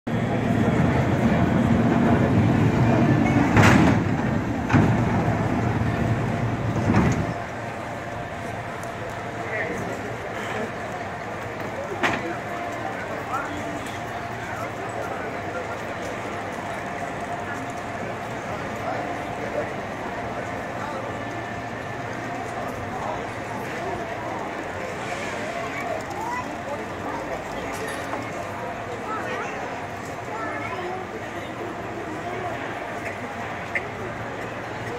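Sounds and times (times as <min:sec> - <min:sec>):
cable car rumbling on rails: 0:00.1 - 0:34.9
crowd chattering: 0:00.1 - 0:34.9.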